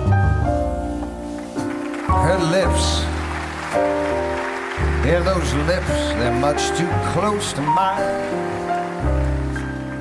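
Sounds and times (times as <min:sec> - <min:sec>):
jazz band playing slow ballad: 0:00.0 - 0:10.0.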